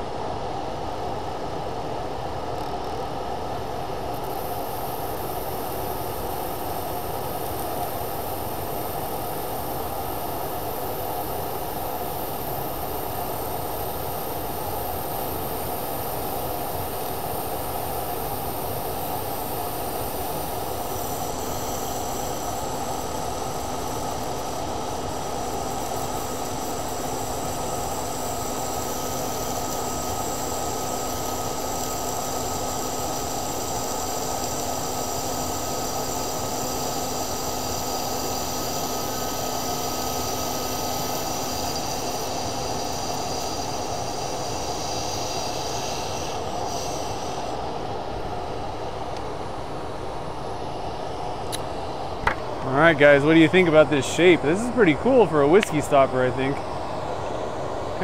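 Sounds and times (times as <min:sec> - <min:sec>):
machine noise with whines: 0:00.0 - 0:58.0.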